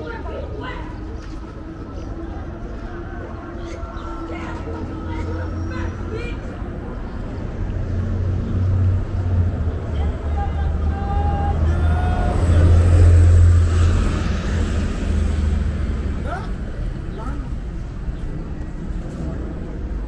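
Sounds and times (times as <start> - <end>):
faint voices: 0.0 - 20.0
passing vehicles rumble: 0.0 - 20.0.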